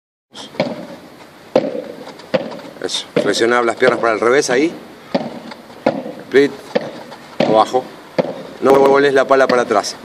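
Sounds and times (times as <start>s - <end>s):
sharp knocks with ring: 0.6s - 4.2s, 5.1s - 9.7s.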